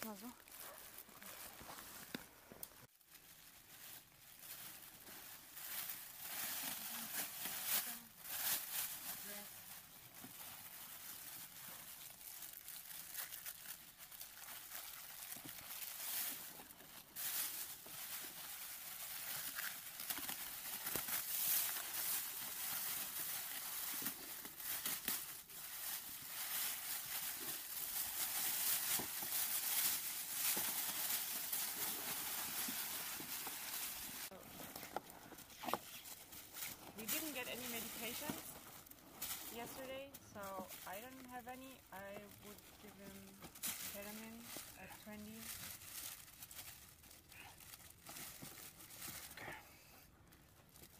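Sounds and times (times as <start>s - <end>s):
foil blanket crinkling: 0.0s - 2.2s, 2.8s - 49.6s.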